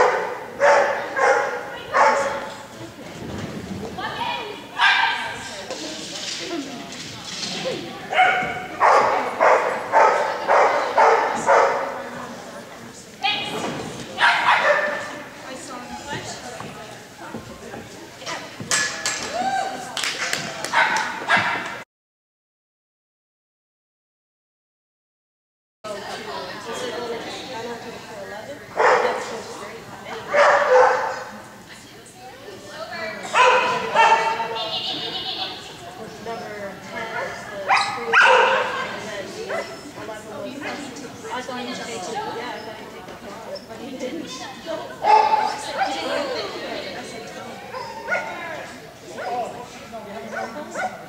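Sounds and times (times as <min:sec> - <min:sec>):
dog barking: 0:00.0 - 0:02.5, 0:04.8 - 0:05.4, 0:08.1 - 0:12.0, 0:14.2 - 0:15.1, 0:20.7 - 0:21.8, 0:28.8 - 0:29.3, 0:30.3 - 0:31.3, 0:33.3 - 0:34.5, 0:37.1 - 0:38.8, 0:45.0 - 0:46.0, 0:47.7 - 0:48.4, 0:50.3 - 0:51.0
background chatter: 0:00.0 - 0:21.8, 0:25.9 - 0:51.0.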